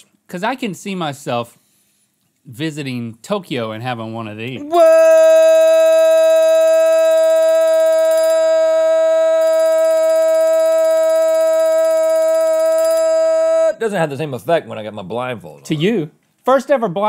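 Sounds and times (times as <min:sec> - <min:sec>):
loud steady tone: 0:04.6 - 0:13.8.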